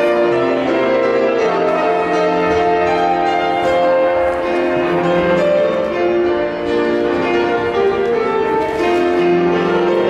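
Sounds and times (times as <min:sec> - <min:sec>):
piano music with held chords: 0:00.0 - 0:10.0.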